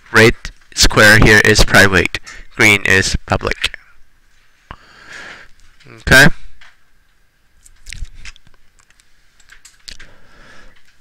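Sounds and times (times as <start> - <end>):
keyboard and mouse clicks: 7.6 - 10.1.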